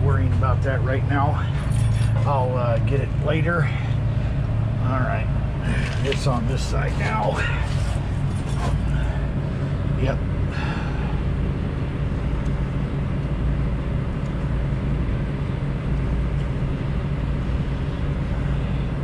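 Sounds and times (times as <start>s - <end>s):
engine idling: 0.0s - 19.0s.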